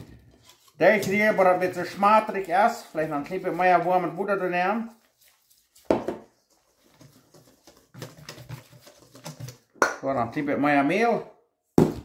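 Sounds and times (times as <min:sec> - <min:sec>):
spoon scraping metal bowl: 0:00.0 - 0:04.5.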